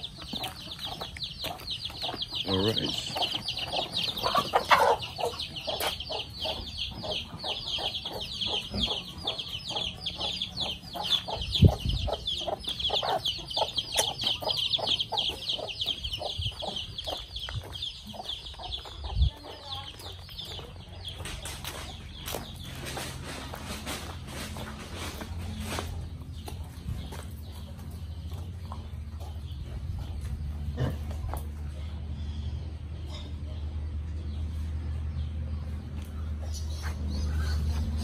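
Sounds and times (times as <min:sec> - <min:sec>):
chickens clucking: 0:00.0 - 0:38.0
chicks peeping: 0:00.0 - 0:38.0.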